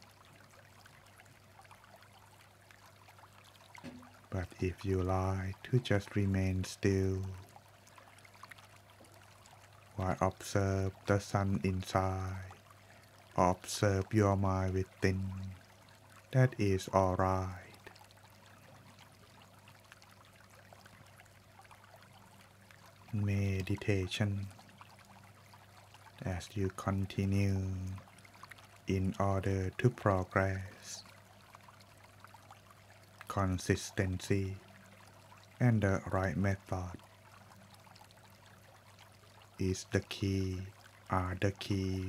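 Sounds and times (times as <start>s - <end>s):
stream-like rush: 0.0s - 1.2s, 3.2s - 15.6s, 16.2s - 19.4s, 22.0s - 31.2s, 33.1s - 42.0s
trickling crackle: 0.0s - 39.6s
faint steady hiss: 0.0s - 42.0s.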